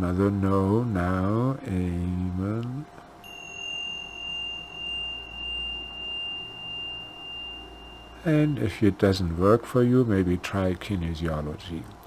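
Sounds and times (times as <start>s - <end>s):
low pulsing hum: 0.0s - 12.0s
high pure ringing tone: 0.7s - 10.2s.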